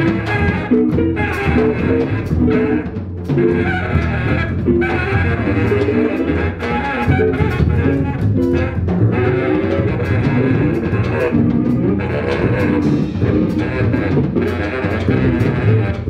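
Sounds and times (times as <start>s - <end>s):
drum kit with cymbal hits: 0.0s - 16.0s
electric guitar: 0.0s - 16.0s
saxophone: 0.0s - 16.0s
upright double bass: 0.0s - 16.0s.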